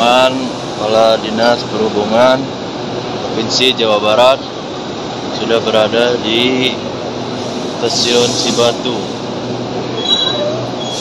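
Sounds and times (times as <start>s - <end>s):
train wheels rolling on rails: 4.2s - 11.0s
brief high squeal: 9.9s - 11.0s.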